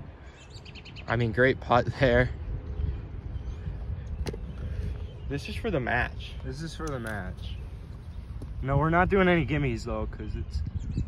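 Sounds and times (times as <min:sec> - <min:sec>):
wind on microphone: 0:01.6 - 0:11.0.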